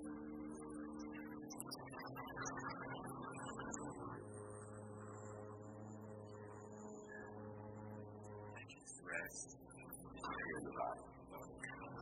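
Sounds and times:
people voicing low sustained tone: 0:09.0 - 0:09.4, 0:10.2 - 0:12.0.

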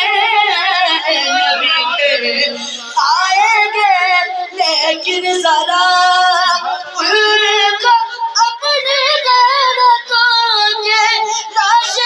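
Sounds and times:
boy singing into a microphone: 0:00.0 - 0:12.0.

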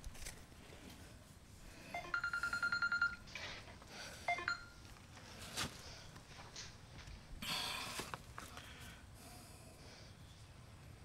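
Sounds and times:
short high beeps: 0:04.3 - 0:04.8.

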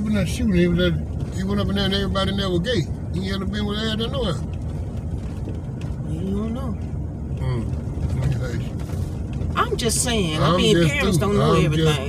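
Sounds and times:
vehicle rumble from inside cabin: 0:00.0 - 0:12.0.

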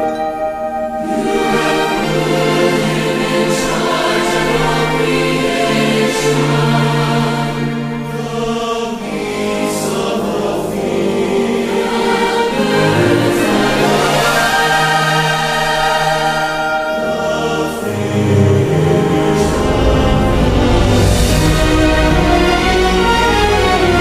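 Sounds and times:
large choir singing: 0:00.0 - 0:24.0
orchestral accompaniment: 0:00.0 - 0:24.0.

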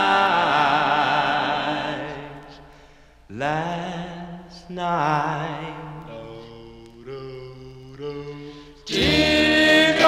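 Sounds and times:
vocal group singing harmony: 0:00.0 - 0:04.4, 0:05.4 - 0:10.0.

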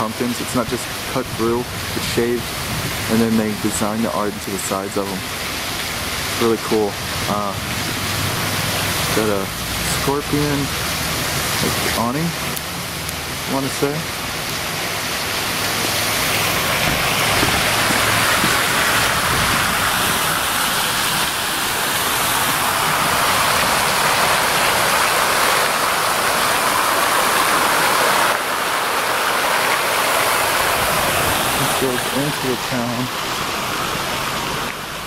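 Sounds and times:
water jets splashing into pool: 0:00.0 - 0:35.0
water pouring down wall: 0:00.0 - 0:35.0.

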